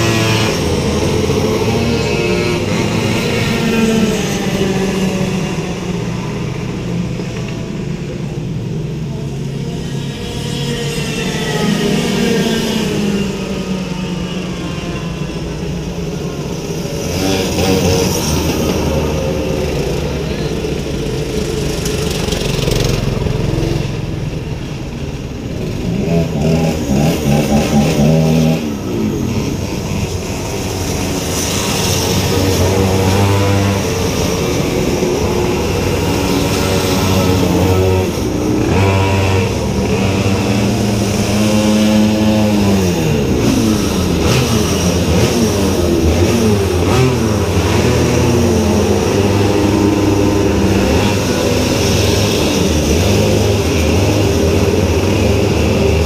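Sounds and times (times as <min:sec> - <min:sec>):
go-kart engines revving: 0:00.0 - 0:56.0.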